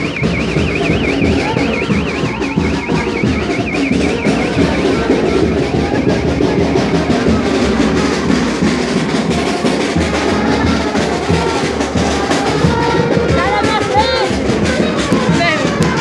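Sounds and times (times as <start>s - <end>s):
bass drum beat: 0.0s - 16.0s
brass horns: 0.0s - 16.0s
street band playing: 0.0s - 16.0s.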